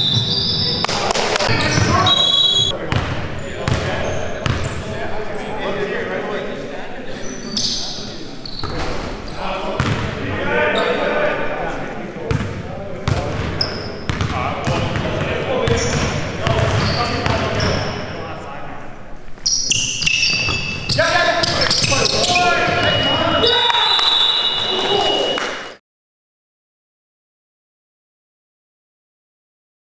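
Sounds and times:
players' voices calling out: 0.2 - 6.1, 19.5 - 25.6
basketball bouncing on court floor: 2.9 - 4.7, 9.8 - 10.1, 12.3 - 17.8.

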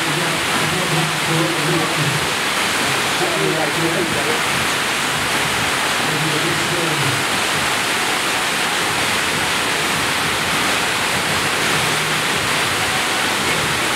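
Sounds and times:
water rushing from wave machine: 0.0 - 13.9.

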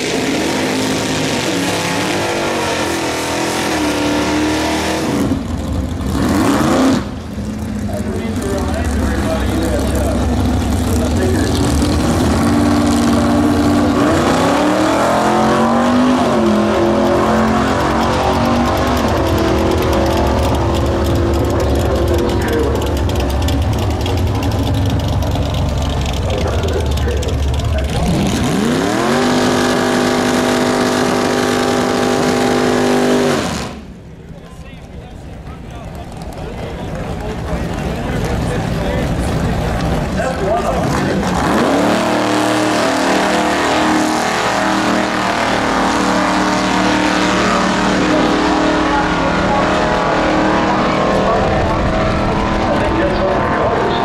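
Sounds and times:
car engines accelerating: 0.0 - 54.0.

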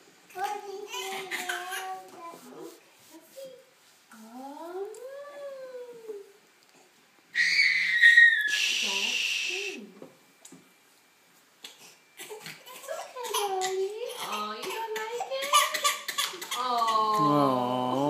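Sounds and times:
child squealing: 7.4 - 8.6.

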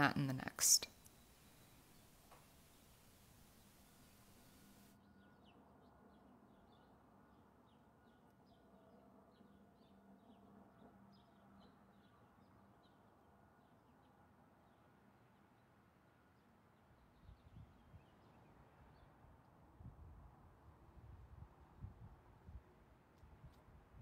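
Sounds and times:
faint birds chirping: 0.0 - 5.5
faint low hum: 0.0 - 5.5.

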